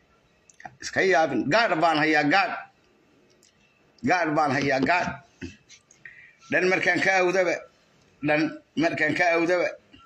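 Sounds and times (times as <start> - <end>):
man speaking: 0.7 - 2.8, 4.0 - 5.7, 6.5 - 9.9
faint clicks: 2.8 - 3.6.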